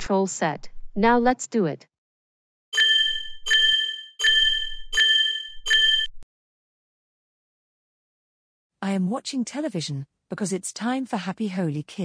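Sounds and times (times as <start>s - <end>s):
electronic bell-like ding: 2.8s - 6.1s.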